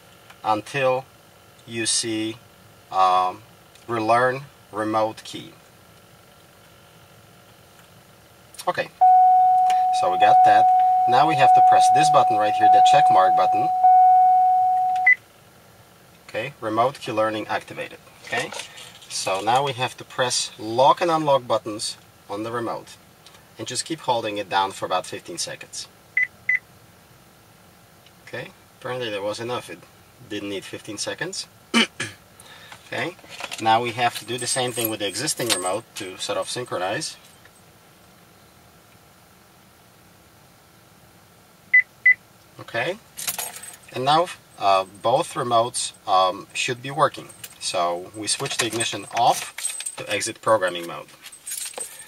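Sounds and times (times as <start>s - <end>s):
faint car cabin hum: 0.4s - 31.7s
steady electronic tone: 9.0s - 15.1s
short high beep: 9.0s - 15.2s.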